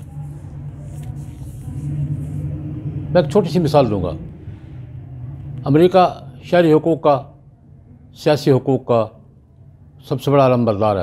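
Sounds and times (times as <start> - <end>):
faint rumbling background noise: 0.0 - 11.0
steady low hum: 0.0 - 11.0.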